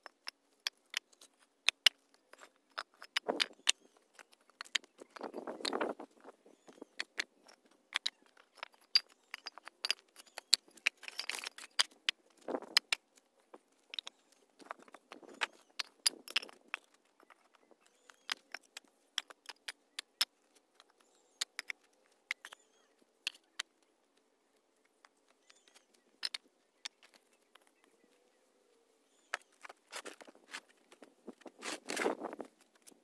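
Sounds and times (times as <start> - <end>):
brick scraping through dirt: 29.2 - 33.0.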